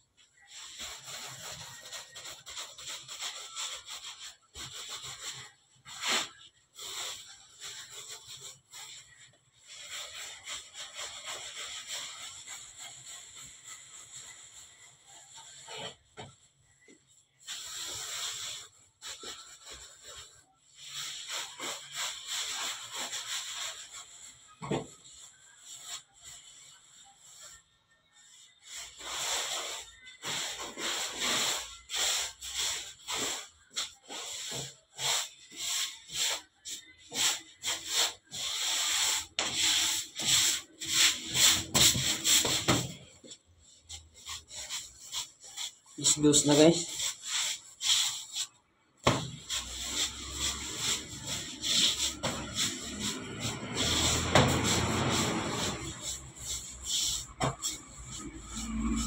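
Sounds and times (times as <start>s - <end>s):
hands rubbing bread dough: 0.1s - 59.0s.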